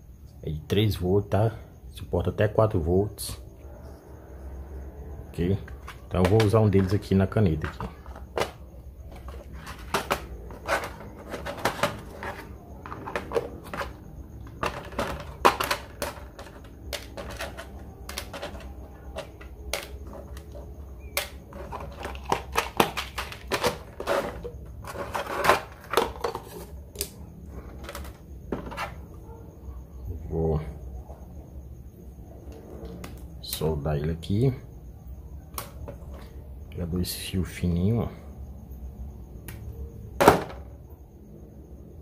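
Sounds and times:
plastic tubs knocked and set down: 5.6 - 26.6, 27.7 - 29.0, 40.2 - 40.7
small parts clicking and rattling: 7.6 - 28.8.

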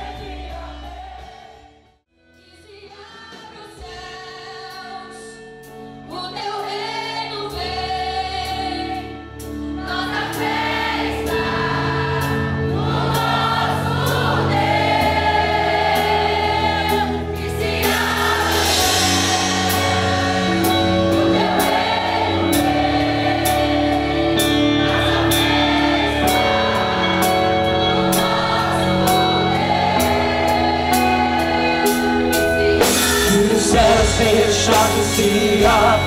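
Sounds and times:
choir singing worship song: 0.0 - 36.0
sustained bass notes: 9.4 - 36.0.

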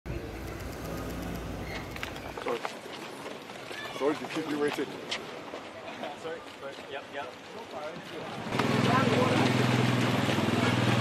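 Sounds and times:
street traffic rumble: 0.1 - 3.7, 7.9 - 11.0.

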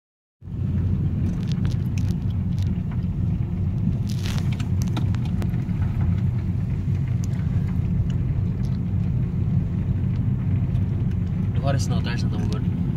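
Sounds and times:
car driving rumble inside cabin: 0.4 - 12.9.

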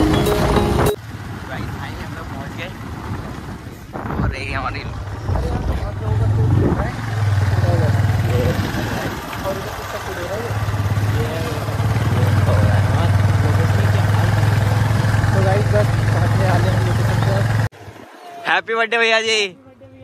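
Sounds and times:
motorcycle engine running: 0.0 - 17.7
wind buffeting microphone: 1.1 - 13.4.

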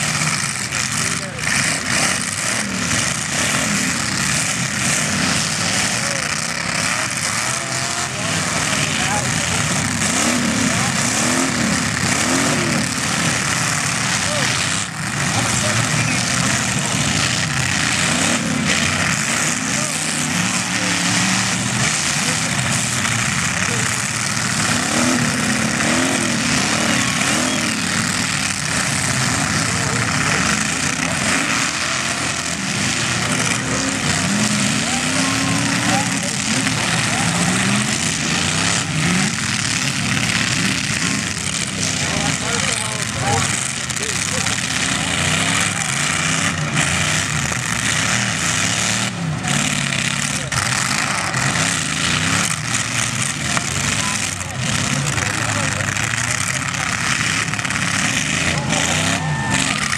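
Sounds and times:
car engines revving: 0.0 - 59.9
loud din: 56.8 - 59.9.

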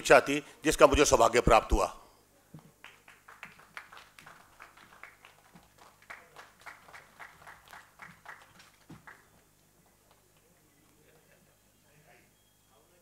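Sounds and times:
sparse hand claps: 2.8 - 10.4.

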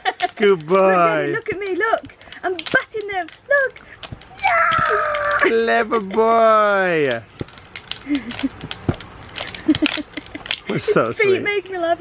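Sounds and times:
plastic rattle rings clicking: 0.0 - 11.1.

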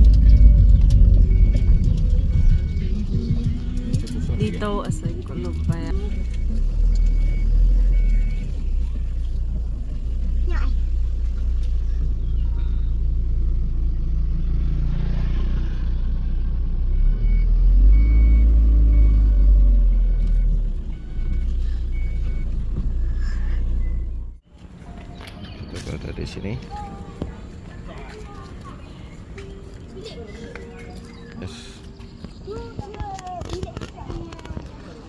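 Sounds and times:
two-pitch electronic beeping: 0.0 - 3.6, 4.2 - 8.5
car cabin rumble: 0.0 - 14.2, 20.1 - 24.4.

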